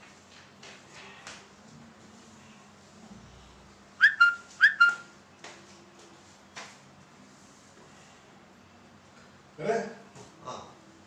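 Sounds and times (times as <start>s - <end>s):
short high whistled chirps: 4.0s - 5.1s.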